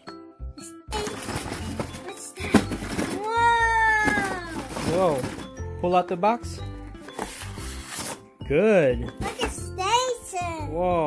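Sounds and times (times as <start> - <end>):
cardboard and styrofoam scraping: 1.0 - 5.5, 7.0 - 8.2.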